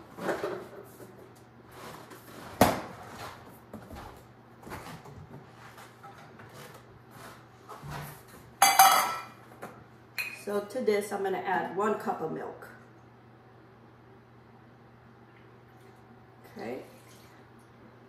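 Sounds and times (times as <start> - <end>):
kitchenware knocking and rummaging: 8.6 - 9.4
metal cup clattering on counter: 8.6 - 9.4.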